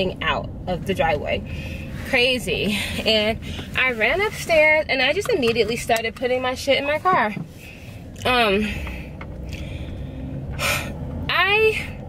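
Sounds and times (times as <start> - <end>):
low rumble in car cabin: 0.0 - 12.0.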